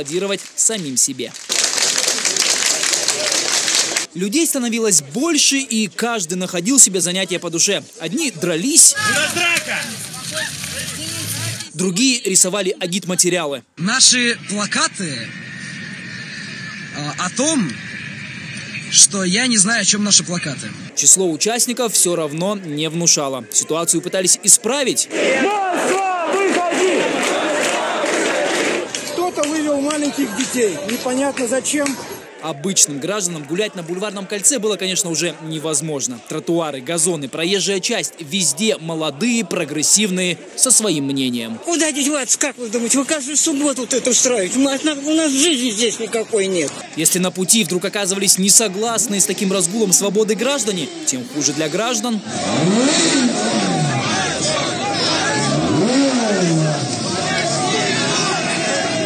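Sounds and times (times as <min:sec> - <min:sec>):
crowd shouting: 0:08.3 - 0:12.2, 0:23.0 - 0:59.0
engine revving: 0:14.2 - 0:20.9, 0:52.2 - 0:59.0.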